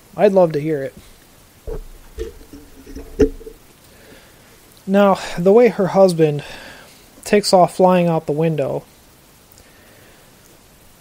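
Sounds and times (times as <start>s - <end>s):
faint low tones: 1.7s - 3.6s
handling noises: 1.7s - 3.6s
soft thump: 1.7s - 3.6s.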